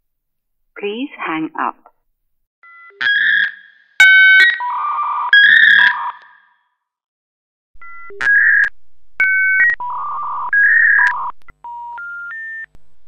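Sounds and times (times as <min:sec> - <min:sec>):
telephone touch tones: 0:07.8 - 0:12.7.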